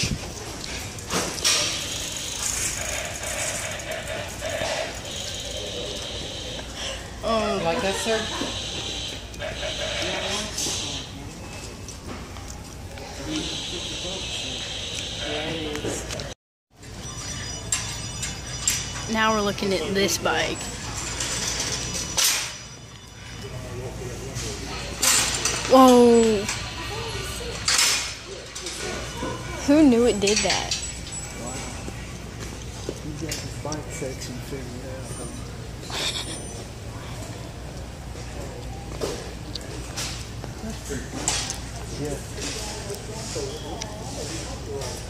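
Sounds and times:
bicycle parts rattling: 0.3 - 5.8
bicycle freewheel ticking: 1.6 - 6.6
indistinct talk: 12.9 - 16.4, 23.3 - 45.0.

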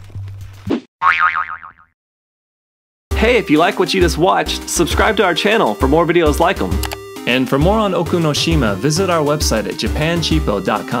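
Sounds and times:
cartoon boing: 1.0 - 2.0.

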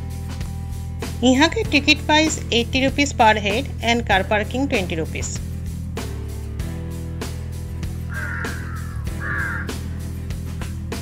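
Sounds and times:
background music with steady beat: 0.0 - 11.0
bird calling: 8.1 - 10.0.

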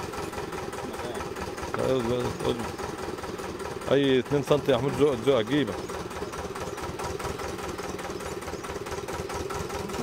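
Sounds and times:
rig engine idling: 0.0 - 10.0.

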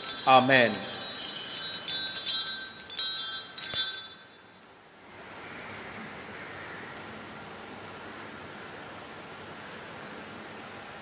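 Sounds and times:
altar bells jingling: 0.0 - 4.7.

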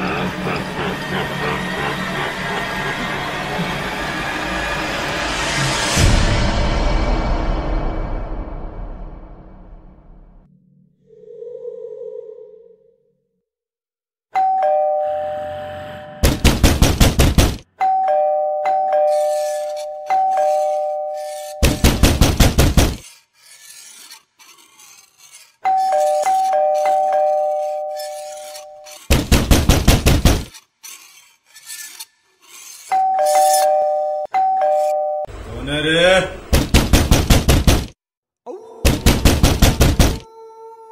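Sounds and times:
electric doorbell ding-dong: 14.4 - 15.6, 33.0 - 35.3
loud banging on a door: 16.2 - 17.6, 21.6 - 23.0, 29.1 - 30.5, 36.5 - 38.0, 38.9 - 40.2.

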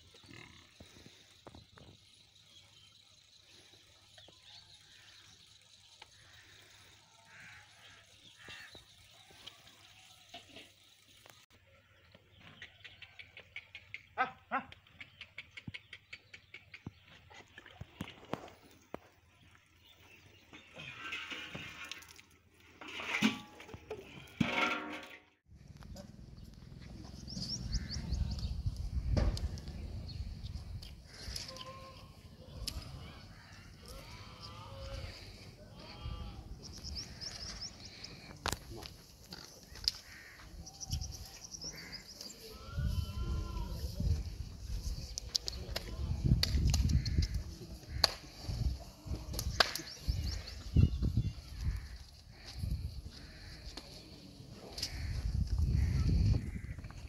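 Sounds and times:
outdoor noise: 0.0 - 57.0.

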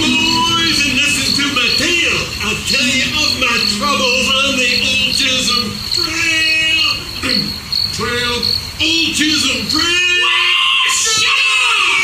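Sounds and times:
high pulsing chirping: 0.0 - 11.0.

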